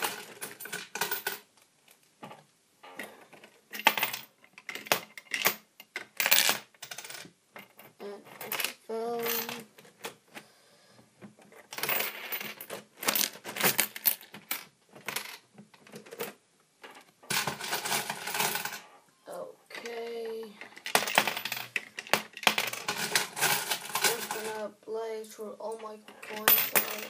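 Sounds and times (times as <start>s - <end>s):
coins clinking and clattering: 0.0s - 1.5s, 2.8s - 10.2s, 11.6s - 19.0s, 20.6s - 24.6s, 26.2s - 27.0s.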